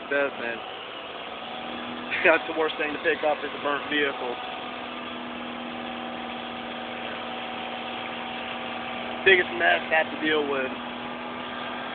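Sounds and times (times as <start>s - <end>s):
engine idling: 0.0s - 11.9s.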